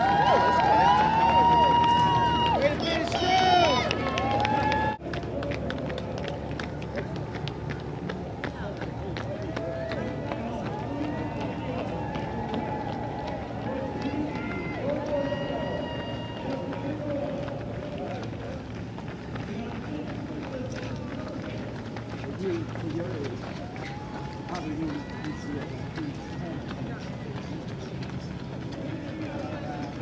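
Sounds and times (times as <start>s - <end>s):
loud voices calling out: 0.0s - 6.8s, 7.9s - 30.0s
hubbub of distant voices: 0.0s - 30.0s
runners' footsteps on pavement: 0.0s - 30.0s.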